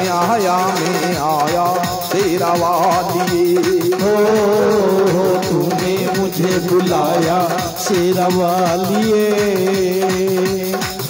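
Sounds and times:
electronic drum beat: 0.0 - 11.0
keyboard melody: 0.0 - 11.0.

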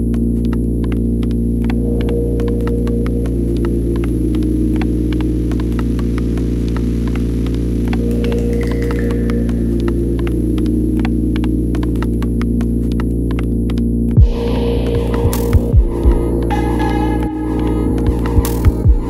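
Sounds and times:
dark ambient electronic music: 0.0 - 19.0
deep thumps: 14.2 - 14.4, 15.6 - 16.3.

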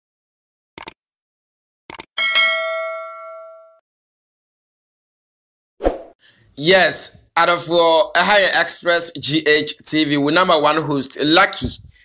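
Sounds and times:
notification bell chime: 2.2 - 3.8.

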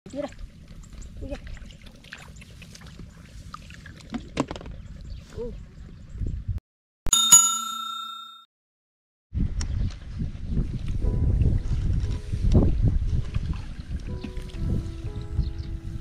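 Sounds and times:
bright bell-like chime: 7.1 - 8.5.

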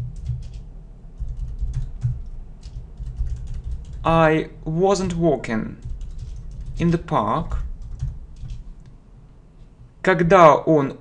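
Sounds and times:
typing on computer keyboard: 0.0 - 0.6, 1.2 - 4.1, 5.8 - 8.6.

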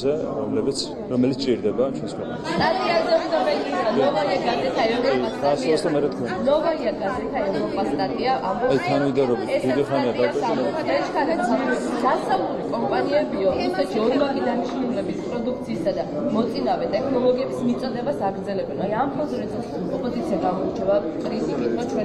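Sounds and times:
voices chattering: 0.0 - 22.0.

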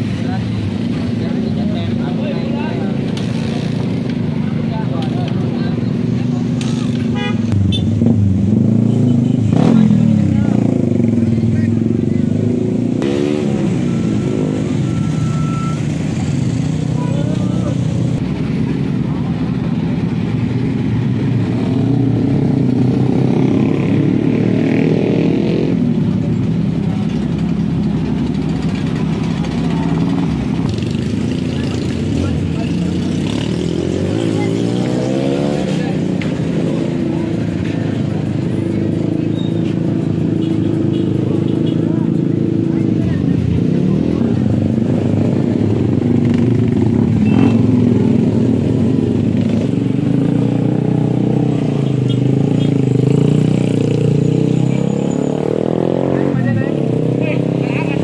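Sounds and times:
car engines running: 0.0 - 58.0
crowd chatter: 0.0 - 58.0
motorcycle engines revving: 0.0 - 58.0.

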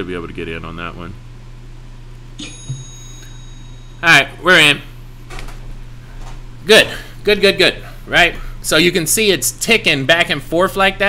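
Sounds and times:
low electrical hum: 0.0 - 11.0
electronic notification chime: 2.4 - 4.0.

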